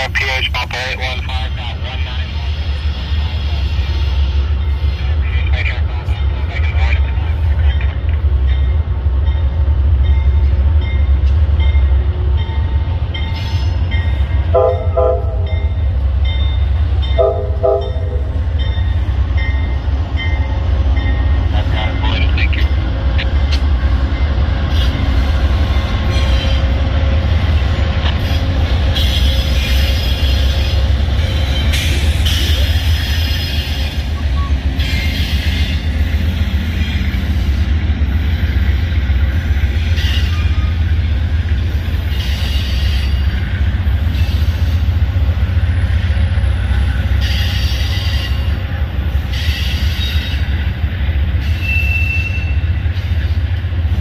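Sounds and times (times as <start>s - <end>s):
locomotive engines rumbling: 0.0s - 54.0s
train horn blasts: 14.5s - 15.7s, 17.1s - 18.4s.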